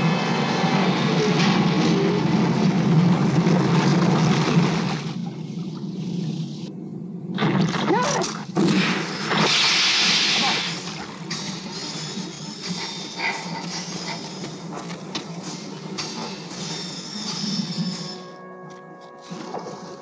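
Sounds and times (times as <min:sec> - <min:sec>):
film music: 0:00.0 - 0:09.4, 0:10.0 - 0:20.0.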